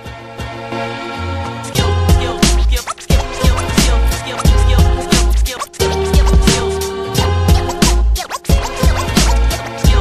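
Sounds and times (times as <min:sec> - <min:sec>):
hip hop beat with heavy bass kicks: 0:01.4 - 0:10.0
turntable scratching: 0:01.7 - 0:10.0.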